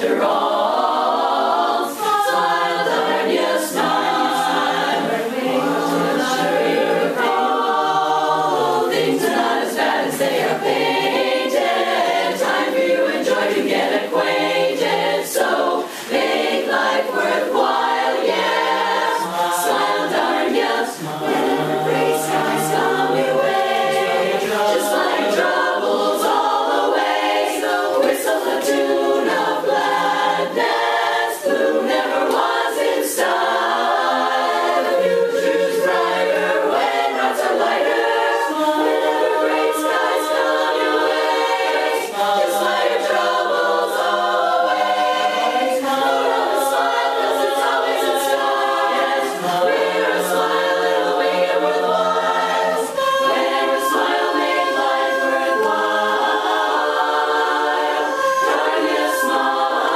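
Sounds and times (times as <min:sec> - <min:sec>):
women's chorus singing: 0:00.0 - 0:59.9.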